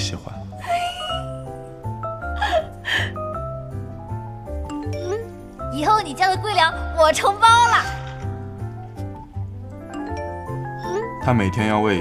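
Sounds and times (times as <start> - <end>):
young woman giggling: 0.6 - 1.4.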